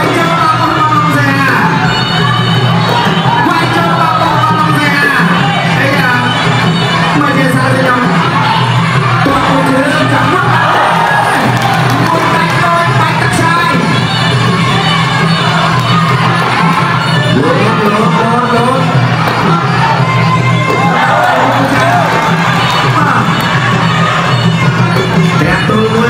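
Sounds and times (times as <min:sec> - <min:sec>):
crowd shouting and cheering: 0:00.0 - 0:26.0.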